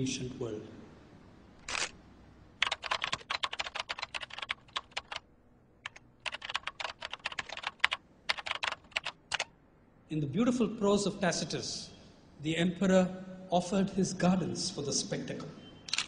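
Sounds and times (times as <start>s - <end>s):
fast typing on keyboard: 2.6s - 5.2s, 5.8s - 9.5s.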